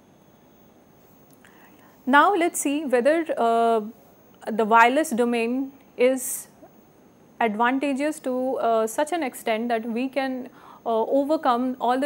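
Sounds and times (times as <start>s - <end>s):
low hiss: 0.0s - 12.0s
thin steady high whine: 0.0s - 12.0s
soft breath: 1.4s - 2.1s, 10.5s - 10.9s.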